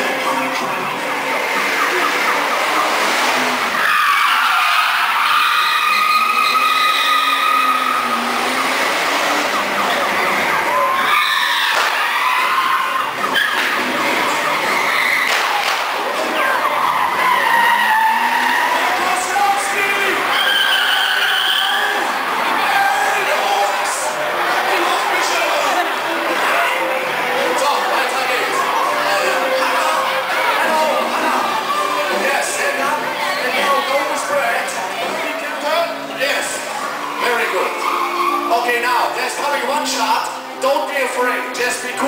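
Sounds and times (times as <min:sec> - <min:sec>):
car engine noise: 0:00.0 - 0:42.0
tires squealing and skidding: 0:00.0 - 0:42.0.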